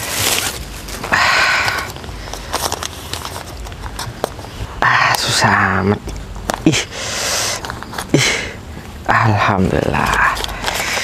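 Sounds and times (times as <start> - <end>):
paper and plastic wrapping rustling: 0.0 - 6.6, 9.6 - 11.0.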